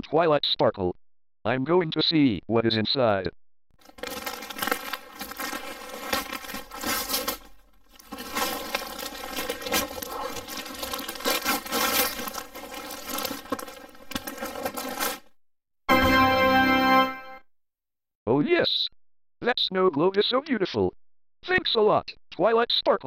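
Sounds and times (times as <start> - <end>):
wrapping paper tearing and crumpling: 3.8 - 15.3.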